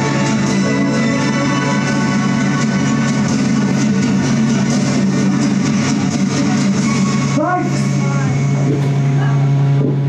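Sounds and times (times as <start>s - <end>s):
electronic music: 0.0s - 9.8s
loud low drone: 0.0s - 10.0s.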